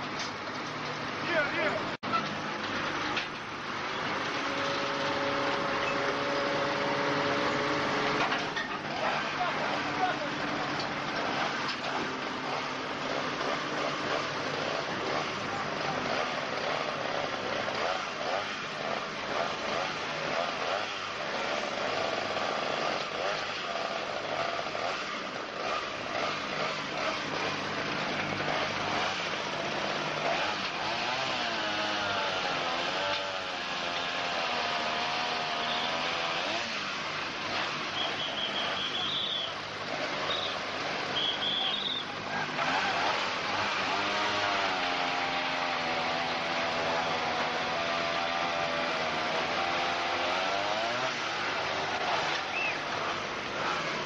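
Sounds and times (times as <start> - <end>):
vehicle engine running: 0.0 - 31.5.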